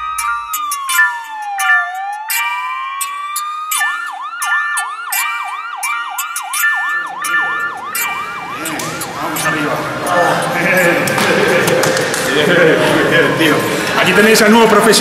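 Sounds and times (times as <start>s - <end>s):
wailing siren: 0.0s - 11.2s
sharp percussive hits: 0.0s - 12.4s
held synth chords: 0.0s - 14.5s.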